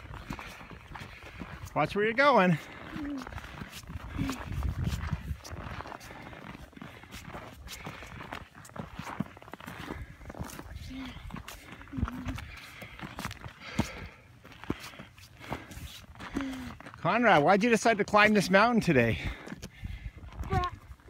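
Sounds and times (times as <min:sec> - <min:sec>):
footsteps crunching on snow and gravel: 0:00.0 - 0:21.0.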